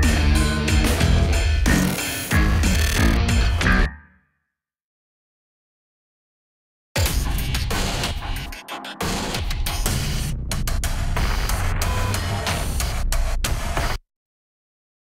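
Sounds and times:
noisy electronic loop with heavy bass: 0:00.0 - 0:03.9, 0:07.0 - 0:14.0.

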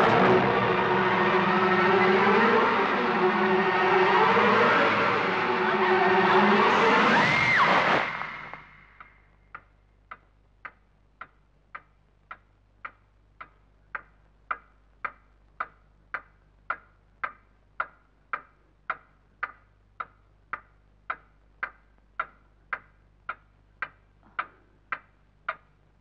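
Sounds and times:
horror film score: 0:00.0 - 0:09.3
clock ticking: 0:09.0 - 0:26.0.

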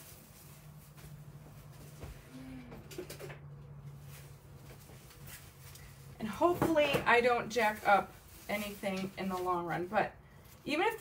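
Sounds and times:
fabric rustling: 0:00.0 - 0:02.1, 0:03.8 - 0:11.0
low hum: 0:01.4 - 0:04.6.

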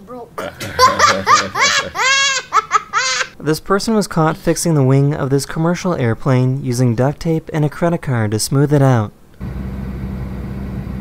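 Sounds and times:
young boy laughing: 0:00.4 - 0:03.4.

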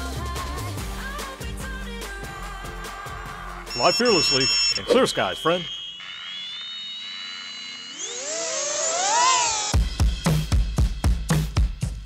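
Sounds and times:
drone motors whining: 0:03.7 - 0:09.9.

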